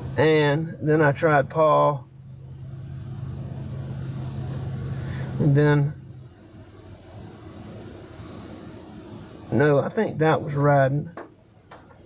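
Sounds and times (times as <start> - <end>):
cabin fan: 0.0 - 12.0
car engine running: 0.0 - 12.0.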